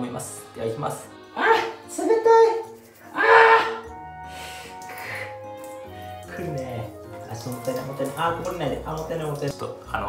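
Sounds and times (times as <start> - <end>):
background music held notes: 0.0 - 10.0
liquid pouring: 2.6 - 9.9.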